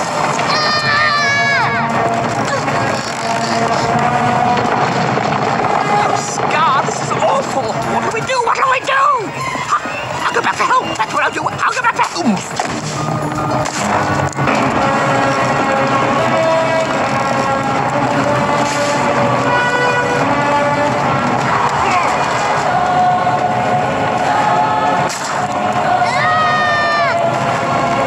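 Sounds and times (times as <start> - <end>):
dramatic orchestral score with choir: 0.0 - 12.0, 12.9 - 28.0
rumble of stampeding herd: 0.0 - 28.0
short rising and falling cry: 13.0 - 28.0.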